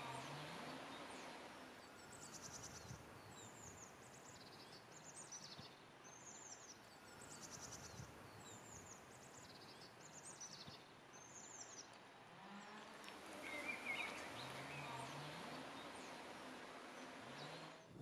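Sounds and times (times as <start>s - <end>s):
songbird singing faintly: 0.0s - 18.0s.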